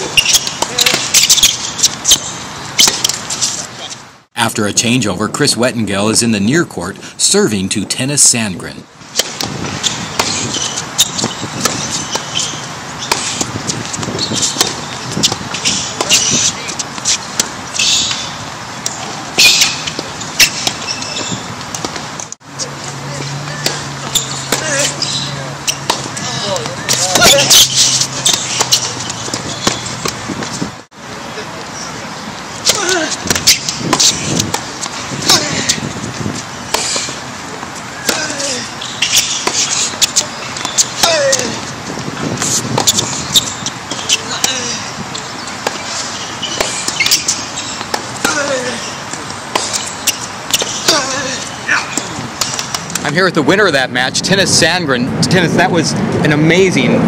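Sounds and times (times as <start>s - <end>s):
tennis balls struck and bouncing: 0.0s - 3.8s, 9.0s - 30.7s, 32.1s - 53.0s.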